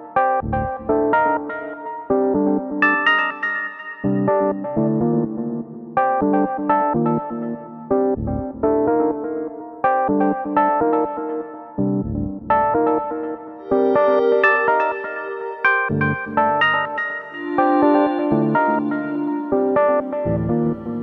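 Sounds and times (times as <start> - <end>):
synthesizer plucked notes: 0.0 - 21.0
deep bass note: 8.2 - 8.6, 12.0 - 12.5
held higher chord: 13.6 - 21.0.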